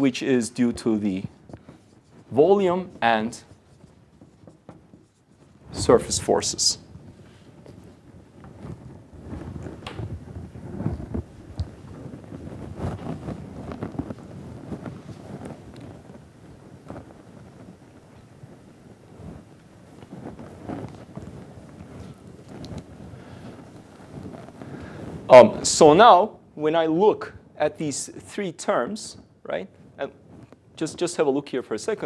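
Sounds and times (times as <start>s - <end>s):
handling rustles and knocks: 0.0s - 25.4s.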